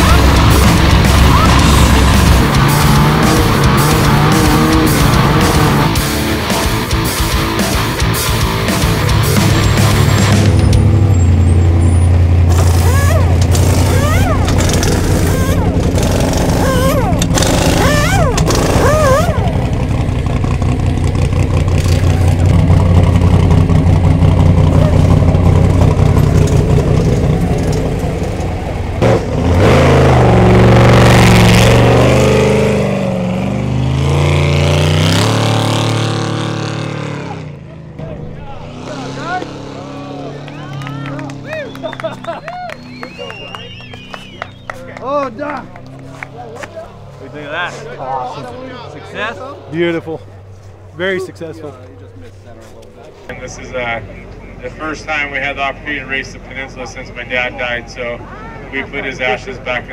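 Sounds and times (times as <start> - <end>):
truck engine running and revving: 0.0 - 59.9.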